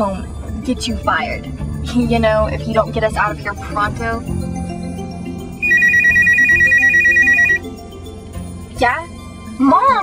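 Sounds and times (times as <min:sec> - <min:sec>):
electronic telephone ringing: 0:05.6 - 0:07.7.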